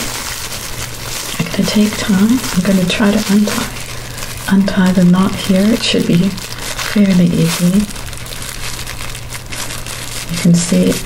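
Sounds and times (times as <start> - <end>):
plastic gloves and bag crinkling: 0.0 - 11.0.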